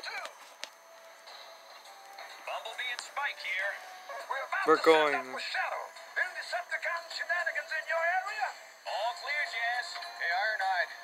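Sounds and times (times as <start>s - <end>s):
cartoon soundtrack through small speaker: 0.0s - 0.6s, 1.2s - 11.0s
thin steady electronic tones: 0.0s - 11.0s.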